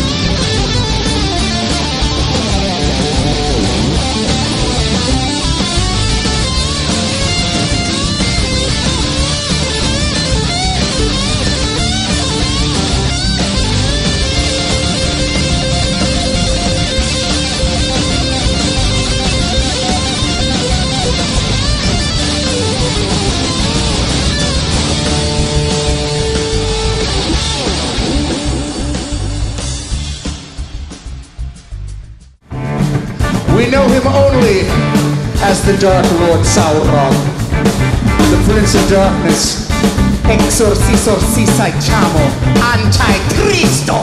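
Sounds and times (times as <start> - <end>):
acoustic guitar strumming: 0.0 - 29.6
electric guitar solo: 0.0 - 29.6
rock band playing live: 0.0 - 31.8, 32.4 - 44.0.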